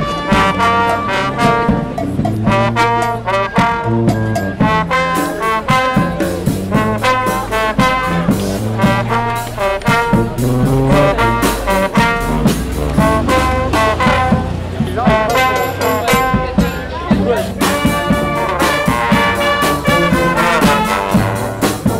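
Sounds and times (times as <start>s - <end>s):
brass band playing: 0.0s - 21.9s
drum strikes: 0.0s - 21.9s.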